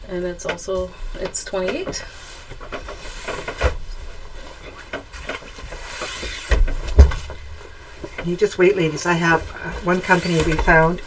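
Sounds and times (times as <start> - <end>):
cloth rustling and sliding: 2.0 - 11.0.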